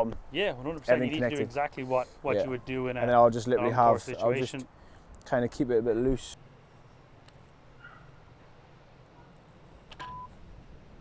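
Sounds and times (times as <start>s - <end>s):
short electronic beep: 10.0s - 10.4s.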